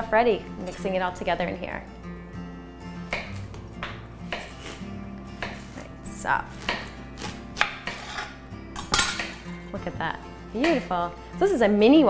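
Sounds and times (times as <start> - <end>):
background music with held tones: 0.0 - 12.0
knife chopping on cutting board: 3.1 - 4.8, 5.4 - 5.9, 6.5 - 8.3.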